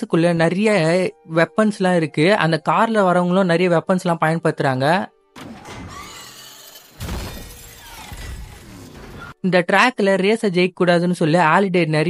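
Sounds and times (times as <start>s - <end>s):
debris breaking and shattering: 5.4s - 9.3s
heavy crash impact: 5.4s - 9.3s.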